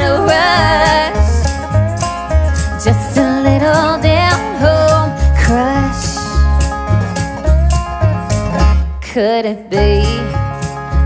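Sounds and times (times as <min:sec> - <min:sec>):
tambourine shakes: 0:00.0 - 0:03.4
upright bass notes: 0:00.0 - 0:09.0, 0:09.8 - 0:11.0
strummed and picked guitar: 0:00.0 - 0:11.0.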